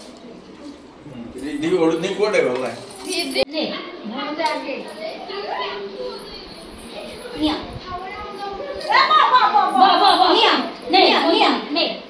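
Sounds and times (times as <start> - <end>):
children chattering: 0.0 - 2.4, 3.0 - 12.0.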